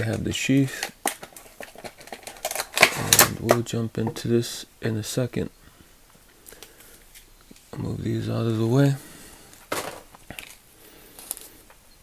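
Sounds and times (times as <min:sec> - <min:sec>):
small items tapping and rustling: 0:00.0 - 0:04.2, 0:09.5 - 0:11.8.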